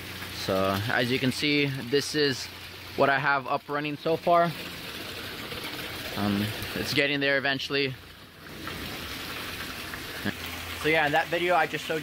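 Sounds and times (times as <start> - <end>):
water pouring and splashing: 0.0 - 12.0.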